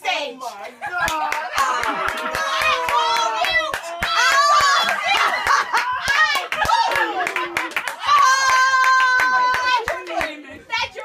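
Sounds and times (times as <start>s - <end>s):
women shouting and yelling: 0.0s - 11.0s
sharp hand claps: 1.0s - 10.4s.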